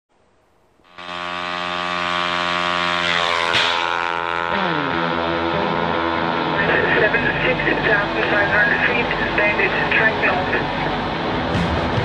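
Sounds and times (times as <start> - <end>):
tones gliding downward: 0.9 - 11.3
aircraft engines whining: 0.9 - 12.0.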